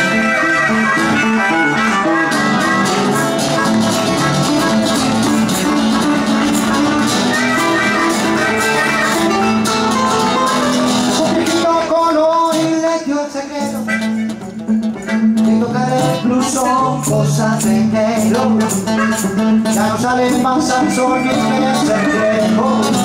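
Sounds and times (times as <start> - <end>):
blues band playing: 0.0 - 23.0
electro-acoustic guitar strumming: 0.0 - 23.0.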